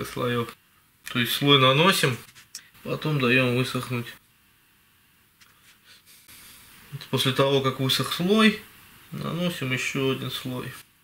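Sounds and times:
soft even hiss: 0:00.0 - 0:11.0.

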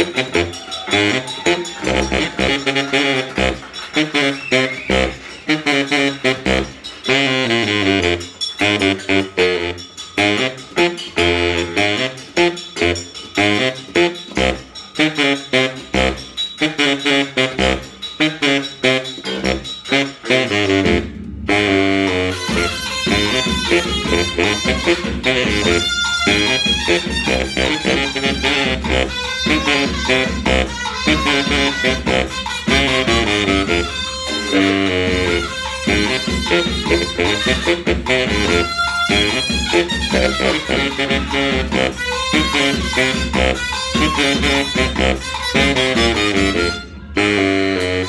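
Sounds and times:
baritone saxophone riff: 0:00.0 - 0:48.0.

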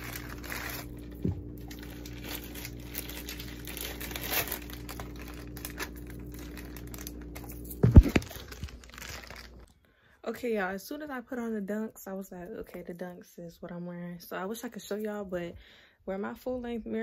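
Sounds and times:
plastic bag crinkling: 0:00.0 - 0:09.7
low steady hum: 0:00.0 - 0:17.0.

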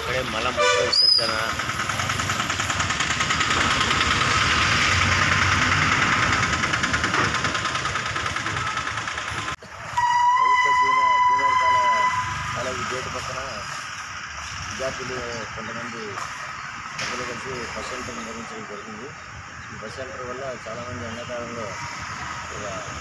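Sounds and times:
voices: 0:00.0 - 0:03.0, 0:07.2 - 0:23.0
motor engine running: 0:01.3 - 0:09.6.

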